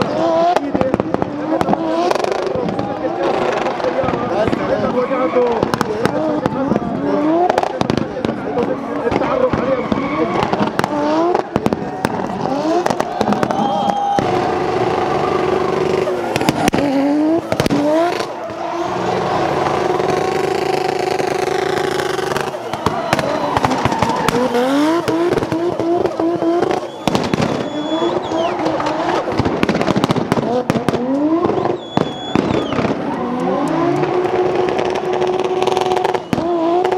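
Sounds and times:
exhaust cracks and pops: 0.0 - 15.2, 15.9 - 36.9
car engine revving hard: 0.0 - 36.9.

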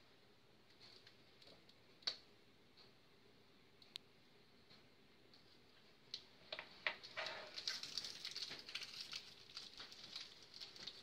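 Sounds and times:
wrapper crinkling: 7.2 - 11.0.

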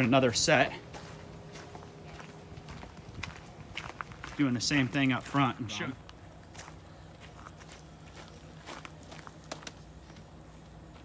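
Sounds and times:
footsteps on gravel: 0.0 - 11.0
low steady hum: 0.0 - 11.0.

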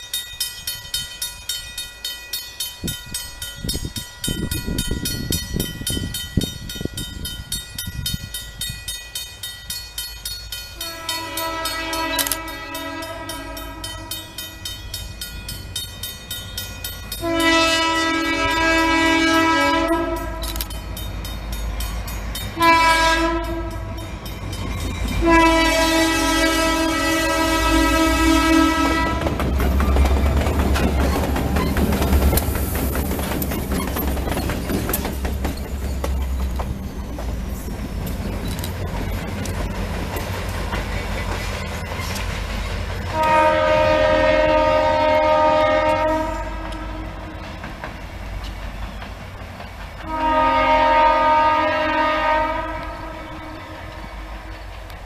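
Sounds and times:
crossing bell ringing: 0.0 - 32.6
locomotive air horn blasts: 10.8 - 14.5, 17.2 - 20.7, 22.6 - 24.0, 25.2 - 29.4, 43.1 - 47.3, 50.0 - 54.3
locomotive rumble: 10.8 - 55.0.

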